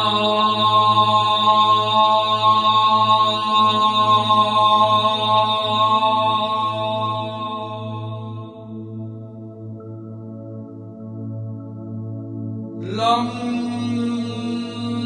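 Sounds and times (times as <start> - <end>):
chanted mantra syllable: 0.0 - 8.6, 12.8 - 15.0.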